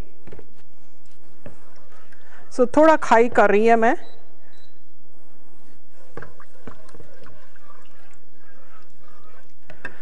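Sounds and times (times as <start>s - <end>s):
spoon stirring liquid in pot: 5.9s - 10.0s.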